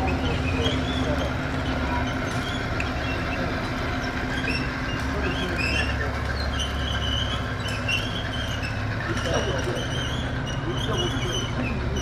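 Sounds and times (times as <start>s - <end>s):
faint high squeaks: 0.0s - 12.0s.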